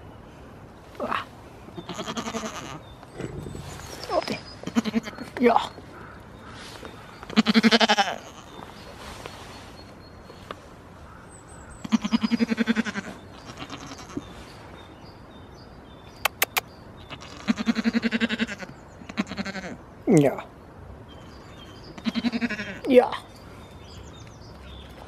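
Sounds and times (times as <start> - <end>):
goat bleating: 1.8 - 2.8, 4.6 - 5.2, 7.4 - 8.6, 11.9 - 14.2, 17.1 - 19.7, 22.0 - 22.8.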